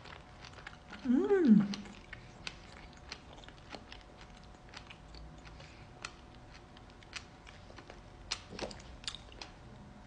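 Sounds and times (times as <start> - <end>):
wet fruit chewing crunches: 0.0 - 9.7.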